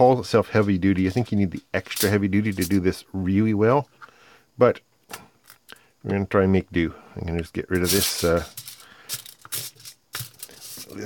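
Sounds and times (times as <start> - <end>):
aluminium foil crinkling and tearing: 7.8 - 11.0.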